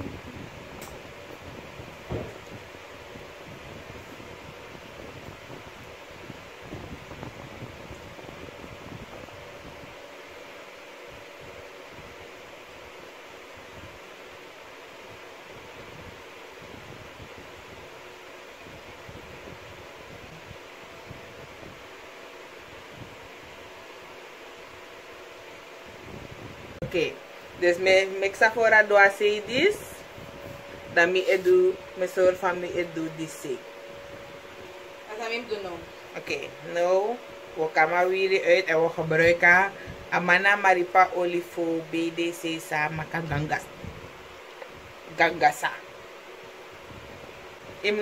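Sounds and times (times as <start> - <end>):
fan whirring: 0.0 - 48.0.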